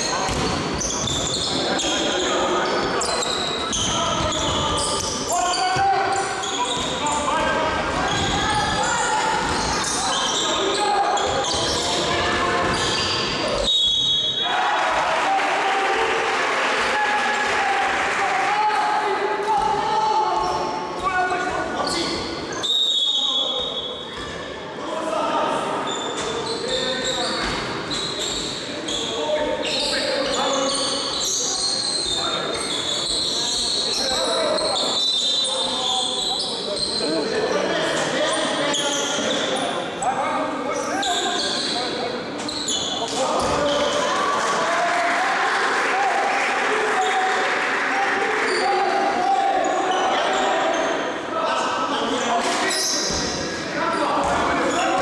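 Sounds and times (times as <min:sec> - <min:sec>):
referee's whistle blasts: 0:13.6 - 0:14.5, 0:22.6 - 0:24.0
echoing shouts of players: 0:14.0 - 0:21.5, 0:43.3 - 0:51.3.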